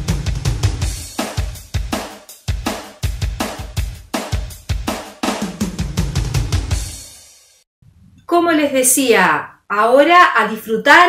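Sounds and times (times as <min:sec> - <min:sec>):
drum kit beat: 0:00.0 - 0:07.6.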